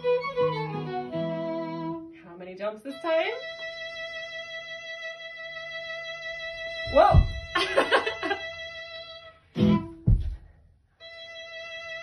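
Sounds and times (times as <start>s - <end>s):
folk dance music sustained note: 0.0s - 2.2s, 2.9s - 12.0s
low thump: 6.8s - 8.0s, 10.0s - 10.6s.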